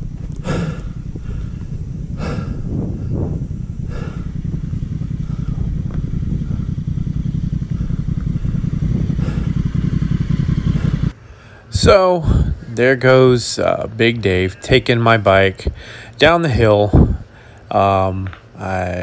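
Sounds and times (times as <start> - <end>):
motorcycle engine running: 0.0 - 11.2.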